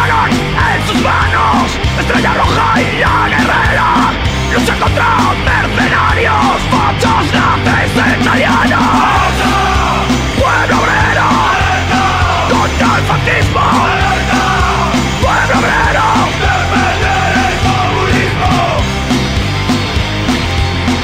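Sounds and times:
person yelling vocals: 0.0 - 18.9
punk rock song: 0.0 - 21.0.

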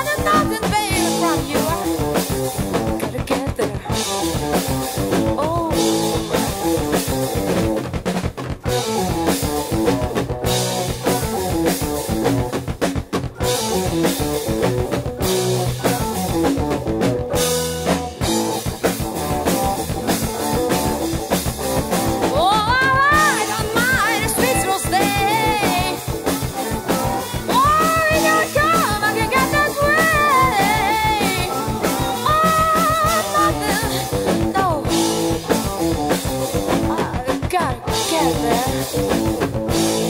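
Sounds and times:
drum kit: 0.0 - 40.0
electric bass: 0.0 - 40.0
electric guitar: 0.0 - 40.0
hammond organ: 13.4 - 36.7.

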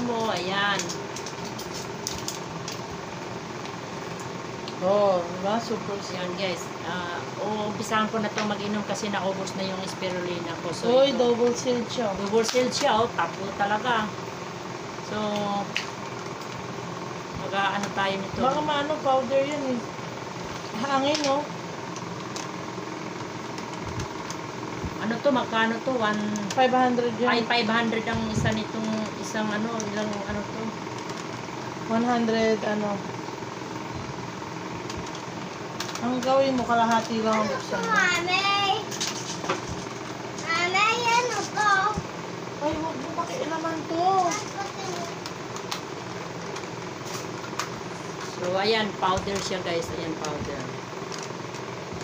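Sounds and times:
mechanical hum: 0.0 - 52.0.

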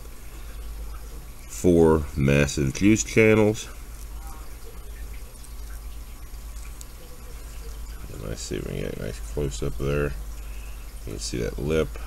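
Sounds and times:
low background hum with hiss: 0.0 - 12.0
faint small ticks: 5.0 - 7.8.

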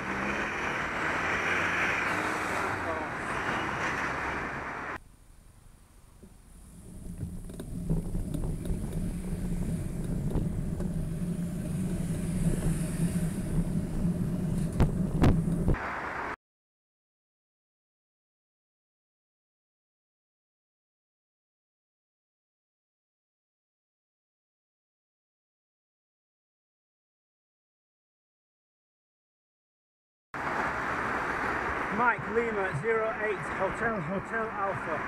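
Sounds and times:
car engine idling: 4.5 - 15.8
wind rushing over microphone: 7.0 - 15.8.

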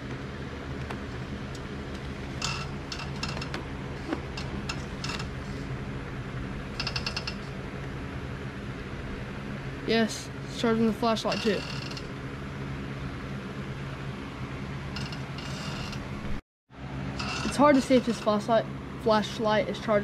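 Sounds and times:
electric fan humming: 0.0 - 20.0
rattle of ticks: 1.5 - 5.7, 6.7 - 7.6, 11.3 - 12.2, 14.9 - 16.1.

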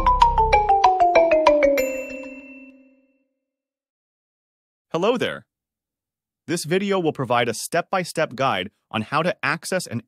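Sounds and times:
musical logo jingle: 0.0 - 3.2.

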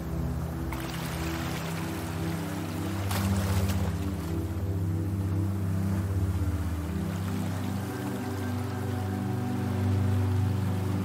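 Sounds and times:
low synth drone: 0.0 - 11.0
soft noisy wash: 0.0 - 11.0.

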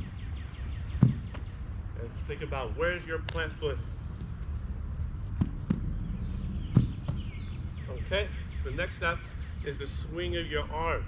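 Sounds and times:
low steady rumble: 0.0 - 11.0
thuds of feet and ball on turf: 0.9 - 1.5, 4.2 - 7.6.

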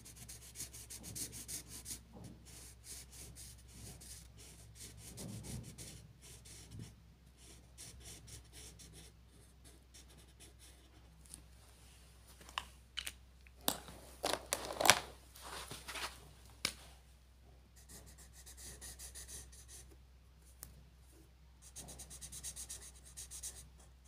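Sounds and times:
marker rubbing on paper: 0.1 - 11.0, 17.8 - 19.9, 21.6 - 23.6.

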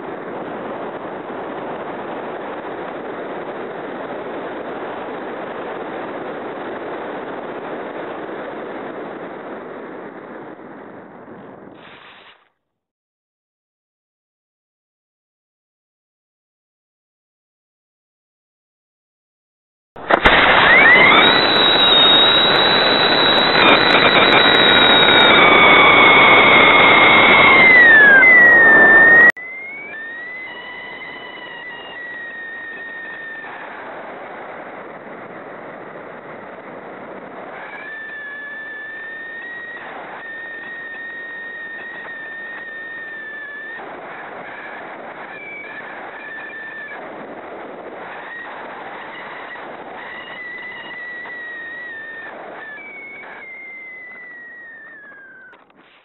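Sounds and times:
high whistling tone: 20.0 - 33.8, 37.6 - 43.8, 44.5 - 47.0, 49.2 - 56.0
rocket motor roaring: 20.0 - 56.0.

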